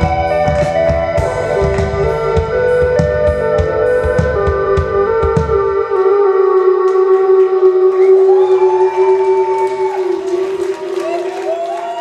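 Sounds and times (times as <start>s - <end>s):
drums: 0.0s - 7.3s
crowd whooping: 7.8s - 12.0s.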